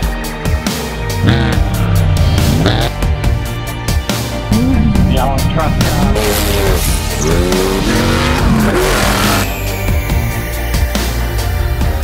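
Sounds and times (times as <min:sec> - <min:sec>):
soundtrack music: 0:00.0 - 0:12.0
race car engine revving: 0:04.5 - 0:09.6.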